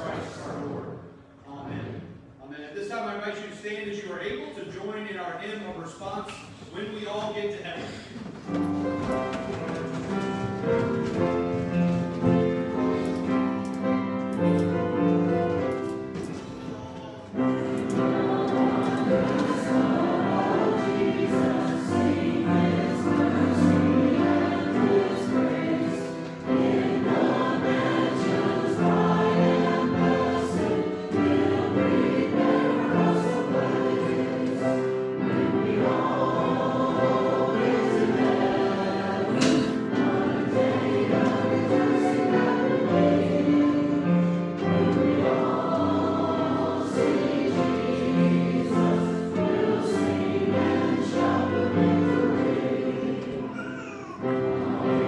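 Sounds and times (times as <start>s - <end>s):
group singing a hymn: 0.0s - 2.2s, 17.2s - 53.6s, 54.2s - 55.0s.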